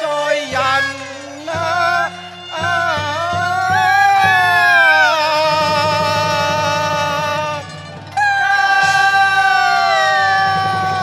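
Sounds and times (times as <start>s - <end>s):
instrumental accompaniment: 0.0s - 11.0s
woman singing opera: 0.0s - 11.0s
sharp percussion strikes: 2.0s - 11.0s.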